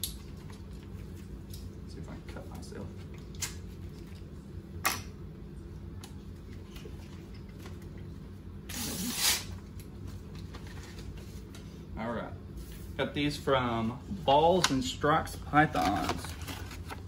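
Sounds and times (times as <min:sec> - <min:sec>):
low steady room hum: 0:00.0 - 0:17.0
paper rustling: 0:15.7 - 0:17.0.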